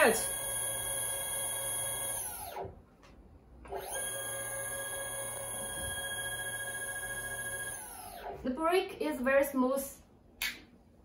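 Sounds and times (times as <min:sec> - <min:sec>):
electric motors whining: 0:00.0 - 0:02.8, 0:03.7 - 0:08.4.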